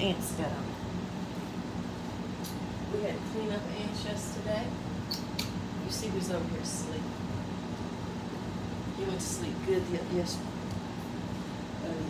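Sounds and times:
ceiling fan humming: 0.0 - 12.0.

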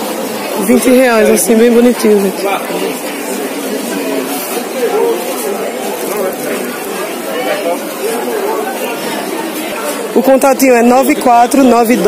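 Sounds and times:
background murmur: 0.0 - 12.0
people chatting: 0.4 - 12.0.

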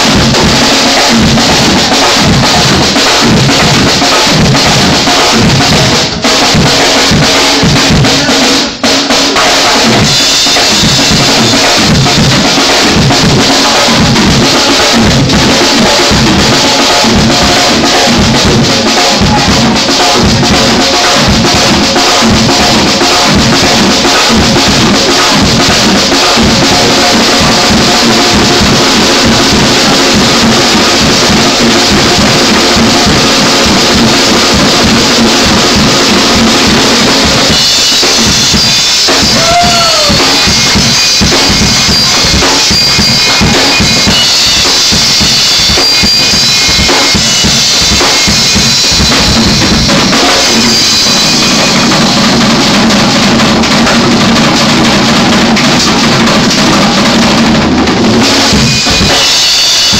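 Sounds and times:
congas: 0.0 - 59.9
drum kit: 0.0 - 59.9
live band playing: 0.0 - 59.9
guitar: 9.4 - 59.9
electric bass: 11.1 - 37.6.

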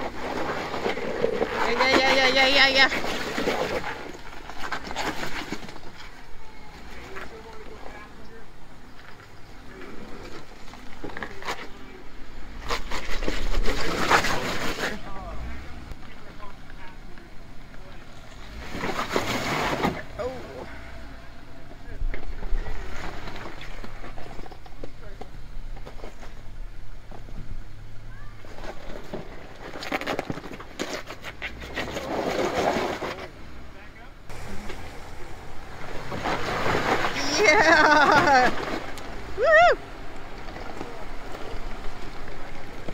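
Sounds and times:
vehicle engine rumbling: 0.0 - 42.9
people talking: 1.5 - 3.0, 6.0 - 8.6, 13.6 - 18.2, 20.0 - 23.0, 33.1 - 38.8, 40.5 - 42.9.

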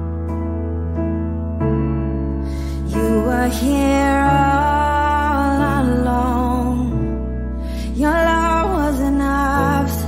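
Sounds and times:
sustained keys and bass: 0.0 - 10.0
person singing worship song: 2.5 - 10.0.

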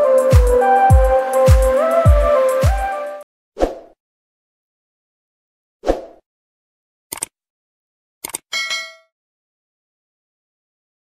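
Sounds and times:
mouse-like double clicks: 7.1 - 7.3, 8.2 - 8.5
short bell ding: 8.5 - 9.1.

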